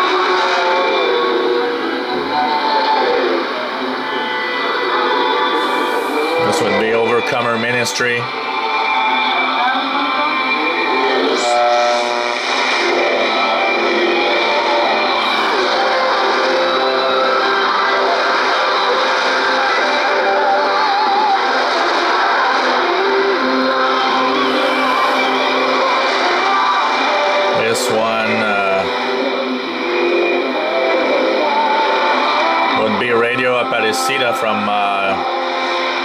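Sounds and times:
music over am radio: 0.0s - 36.0s.

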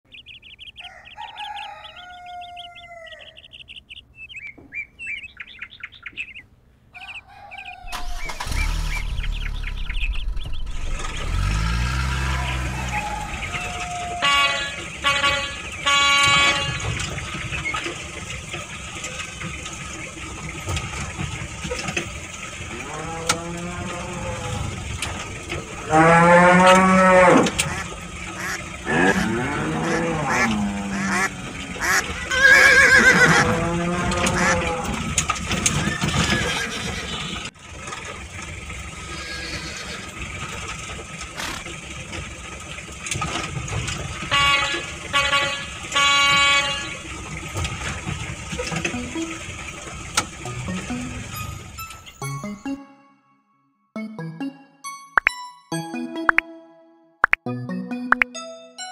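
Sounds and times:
cattle mooing: 22.7s - 25.0s, 25.7s - 35.2s.

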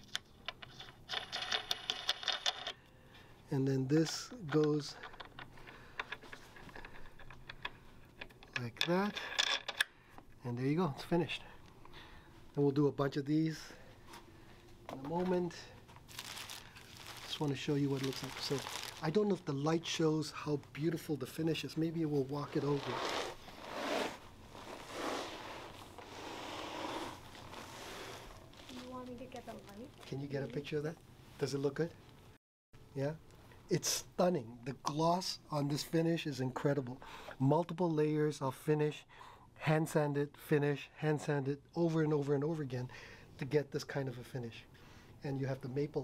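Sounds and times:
speaker scraping across carpet: 22.5s - 29.0s.

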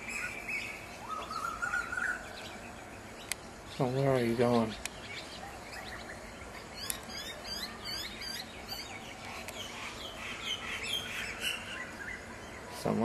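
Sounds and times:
birds chirping: 0.0s - 13.0s.

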